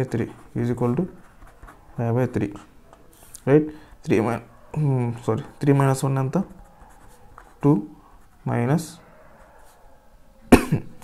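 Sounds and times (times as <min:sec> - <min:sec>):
person coughing: 0:10.5 - 0:11.0.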